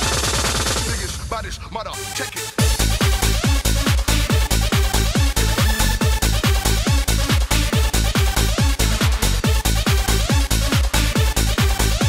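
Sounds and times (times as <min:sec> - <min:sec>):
hard house dance music: 0:00.6 - 0:12.0.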